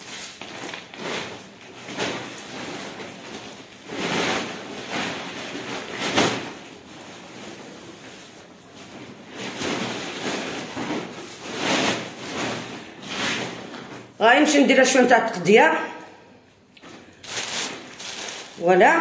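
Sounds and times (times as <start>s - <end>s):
plastic bags rustling: 0.0s - 19.0s.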